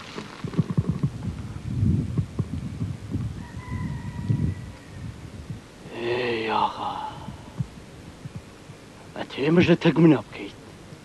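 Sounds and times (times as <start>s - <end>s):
soft low thumps: 0.4s - 3.4s, 7.2s - 9.0s.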